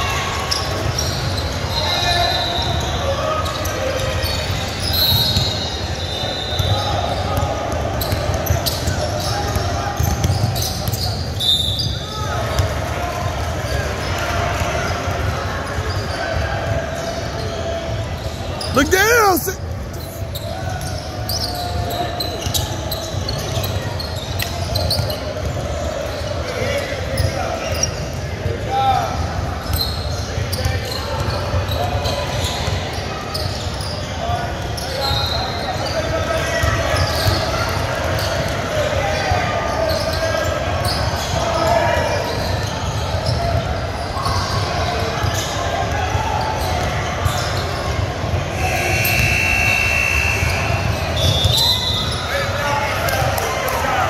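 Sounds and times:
voices in echoing gym: 0:00.0 - 0:54.0
sharp shoe squeal: 0:00.5 - 0:07.4, 0:08.0 - 0:12.6, 0:18.2 - 0:25.3, 0:48.6 - 0:52.4.

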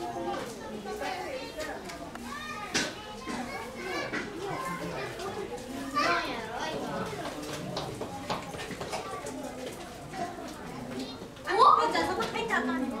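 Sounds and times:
crowd talking: 0:00.0 - 0:13.0
children calling out: 0:02.2 - 0:07.1.

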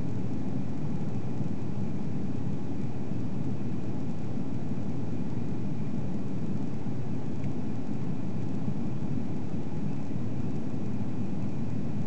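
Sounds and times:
aircraft cabin engine rumble: 0:00.0 - 0:12.0
faint steady whine: 0:00.0 - 0:12.0.

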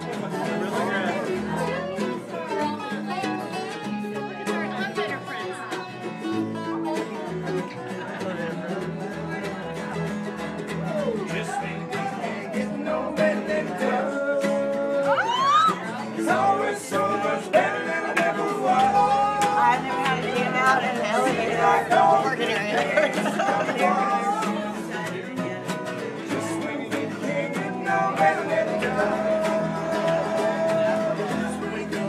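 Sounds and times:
acoustic guitar playing: 0:00.0 - 0:32.0
crowd talking: 0:00.0 - 0:32.0
plucked upright bass: 0:00.0 - 0:32.0
people singing along: 0:11.2 - 0:32.0.

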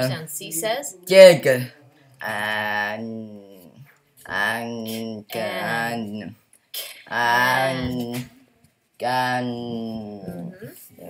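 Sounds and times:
boy sounding out a word: 0:04.3 - 0:06.3, 0:07.1 - 0:08.4.

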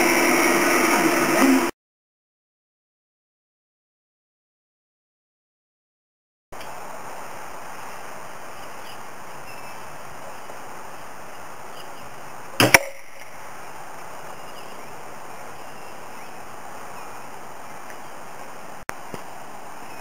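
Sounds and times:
outdoor background hiss: 0:06.6 - 0:20.0
crossbow shot: 0:12.6 - 0:13.3.

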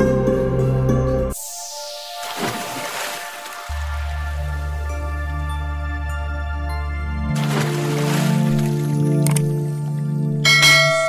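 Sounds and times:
background music with low drone: 0:00.0 - 0:11.0
bell chime: 0:10.4 - 0:11.0.

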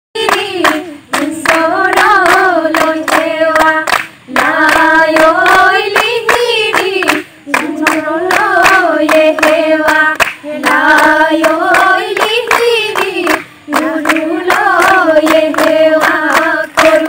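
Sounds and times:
hand claps: 0:00.2 - 0:17.0
women singing in unison: 0:00.2 - 0:17.0.

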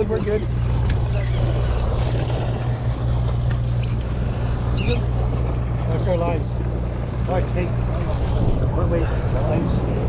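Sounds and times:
boat engine humming: 0:00.0 - 0:10.0
water wash: 0:00.0 - 0:10.0.

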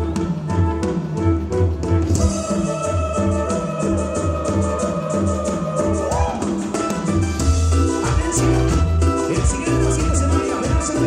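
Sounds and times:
cumbia band playing: 0:00.0 - 0:11.0
drum kit and cymbals: 0:00.0 - 0:11.0
pulsing bass line: 0:00.0 - 0:11.0.

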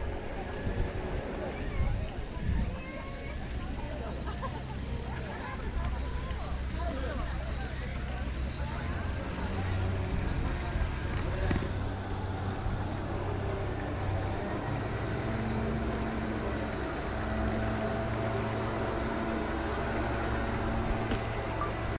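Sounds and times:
distant voices: 0:00.0 - 0:21.9.

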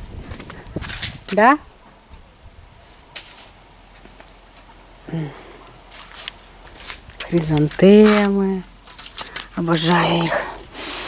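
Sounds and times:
footsteps on paved path: 0:00.0 - 0:01.5, 0:02.1 - 0:04.9, 0:05.6 - 0:11.0.

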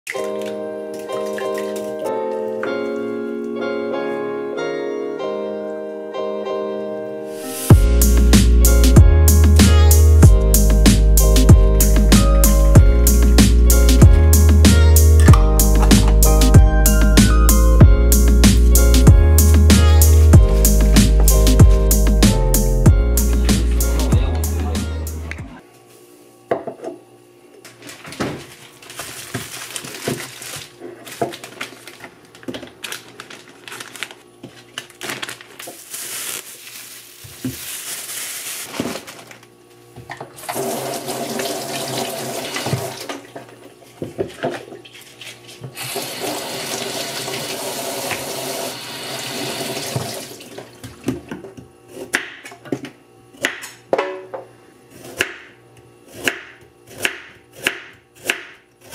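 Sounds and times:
tap water running into sink: 0:40.4 - 0:43.2, 0:45.8 - 0:51.0.

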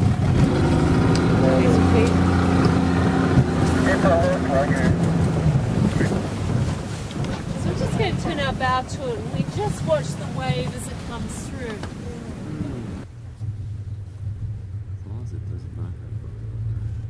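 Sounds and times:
outboard motor idling: 0:00.0 - 0:17.0
wind buffeting microphone: 0:00.0 - 0:17.0.

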